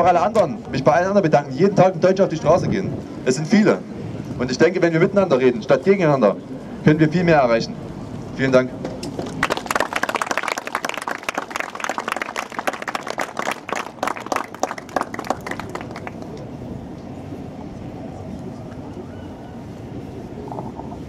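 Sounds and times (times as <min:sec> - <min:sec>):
low street background: 0:00.0 - 0:21.0
applause with hand claps: 0:09.2 - 0:16.5.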